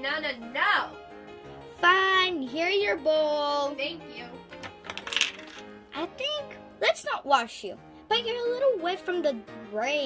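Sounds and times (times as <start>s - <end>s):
soft background music: 0.0s - 10.0s
plastic toy bowl clattering: 4.6s - 5.7s.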